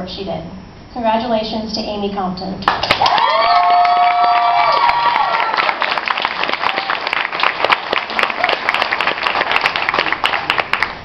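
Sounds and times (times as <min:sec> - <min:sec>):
audience applauding: 0:02.7 - 0:11.0
high whooping cheer: 0:02.9 - 0:09.2.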